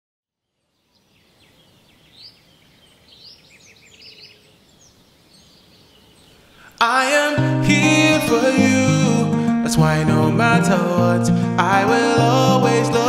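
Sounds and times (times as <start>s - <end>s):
birds chirping and trilling: 0.4s - 7.2s.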